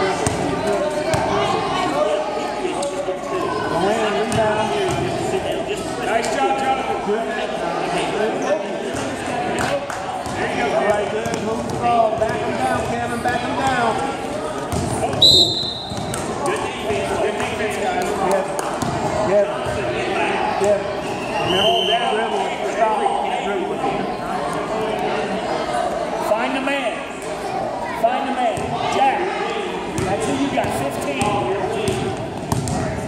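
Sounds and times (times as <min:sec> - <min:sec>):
chatter of voices: 0:00.0 - 0:33.0.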